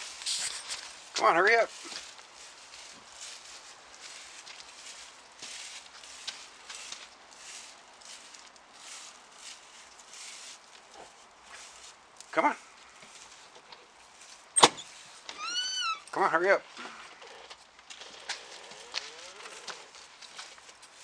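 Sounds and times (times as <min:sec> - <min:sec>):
footsteps on dry leaves: 0:00.0 - 0:21.0.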